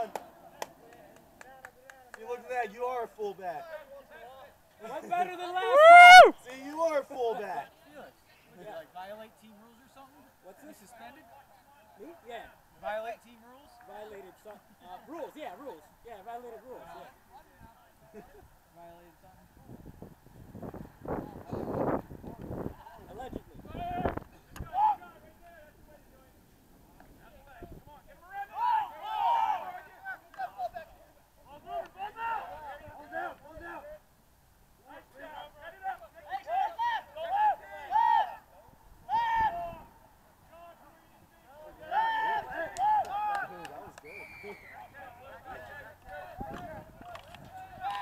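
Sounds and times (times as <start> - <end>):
players shouting calls: 0.0 - 8.6, 23.7 - 25.8, 28.0 - 34.1, 34.8 - 48.0.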